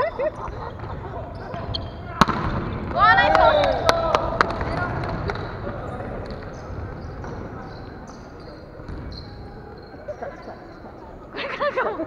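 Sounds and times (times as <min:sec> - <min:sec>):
echoing hall ambience: 0:00.0 - 0:12.0.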